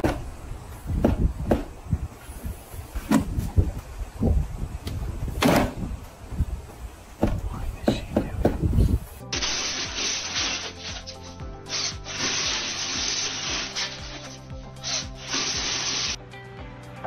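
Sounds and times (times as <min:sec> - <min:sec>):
background music: 0:07.3 - 0:17.0
corn kernels scraping off cobs: 0:09.4 - 0:16.2.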